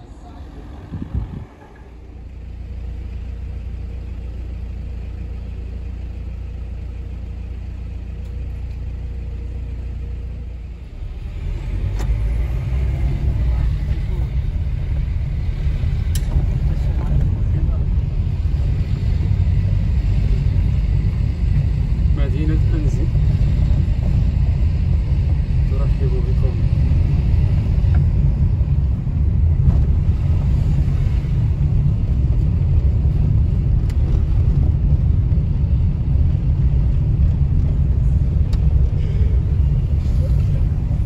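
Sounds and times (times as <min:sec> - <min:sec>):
car engine and road noise: 0:00.0 - 0:41.0.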